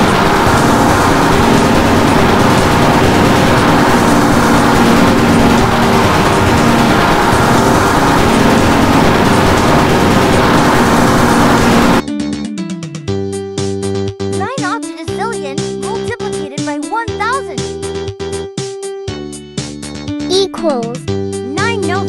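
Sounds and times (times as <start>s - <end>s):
loud steady rushing noise: 0.0s - 12.0s.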